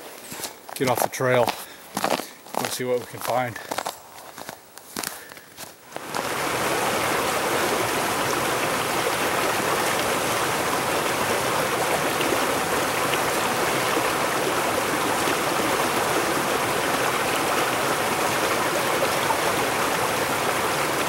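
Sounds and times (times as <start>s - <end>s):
creek rushing over rocks: 5.8s - 21.0s.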